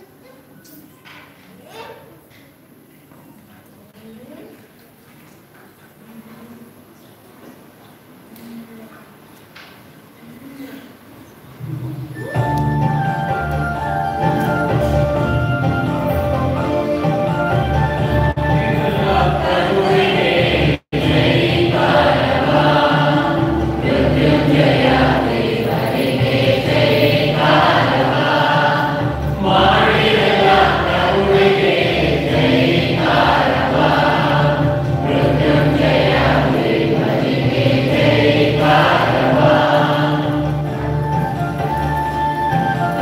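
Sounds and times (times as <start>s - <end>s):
choir singing a hymn: 15.6s - 42.6s.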